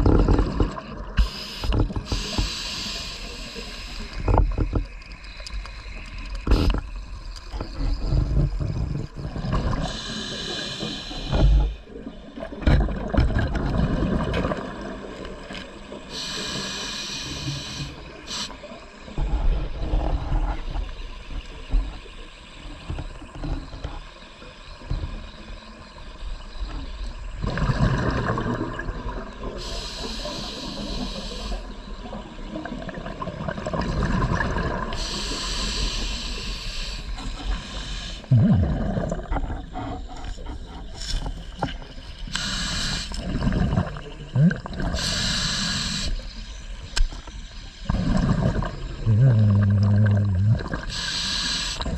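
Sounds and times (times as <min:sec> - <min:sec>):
regulator hissing inhale: 0:01.2 - 0:04.4, 0:09.7 - 0:11.9, 0:16.0 - 0:18.8, 0:29.6 - 0:31.9, 0:34.9 - 0:38.3, 0:42.2 - 0:43.4, 0:44.8 - 0:48.1, 0:50.7 - 0:51.9
bubbling exhale: 0:32.8 - 0:41.0, 0:47.6 - 0:51.9.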